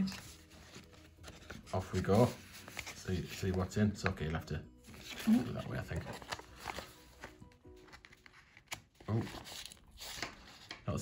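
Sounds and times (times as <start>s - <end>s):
paper envelope crinkling: 0.0s - 4.0s, 4.9s - 11.0s
faint music: 0.0s - 11.0s.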